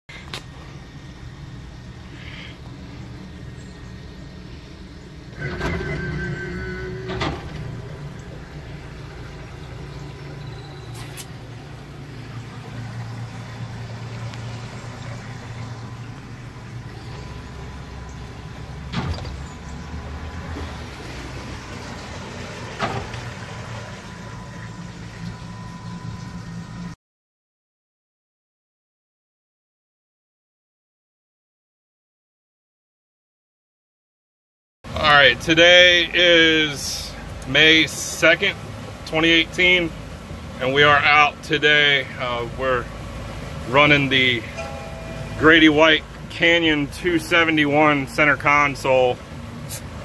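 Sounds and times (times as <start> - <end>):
outboard motors idling: 0.1 - 27.0, 34.9 - 50.0.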